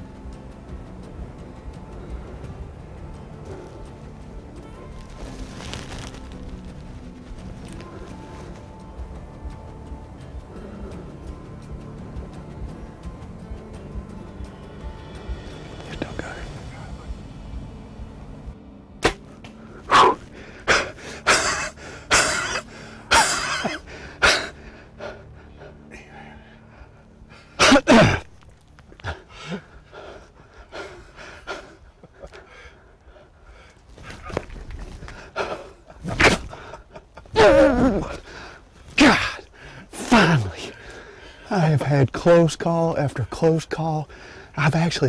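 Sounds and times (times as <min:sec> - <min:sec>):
bow shot snap: 0:19.0 - 0:20.2
person panting and gasping: 0:19.8 - 0:28.2, 0:29.0 - 0:34.3, 0:34.9 - 0:39.9, 0:40.7 - 0:41.5, 0:44.1 - 0:44.6.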